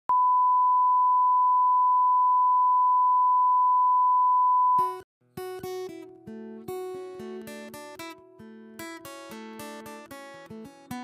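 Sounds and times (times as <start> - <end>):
steady test tone beep: 0.1 - 4.9.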